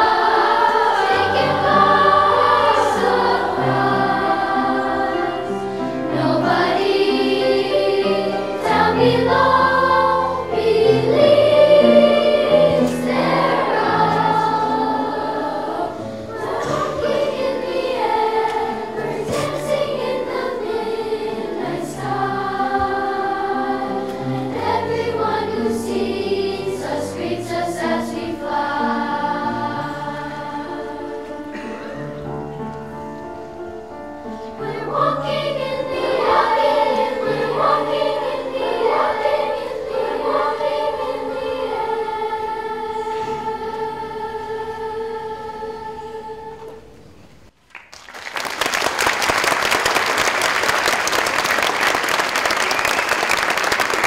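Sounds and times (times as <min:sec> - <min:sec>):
children's choir singing: 0:00.0 - 0:47.2, 0:48.5 - 0:54.0
piano: 0:00.0 - 0:54.0.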